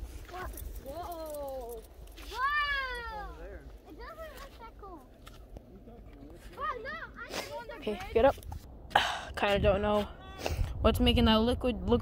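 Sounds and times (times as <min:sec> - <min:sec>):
child saying whoa: 0:02.2 - 0:03.4.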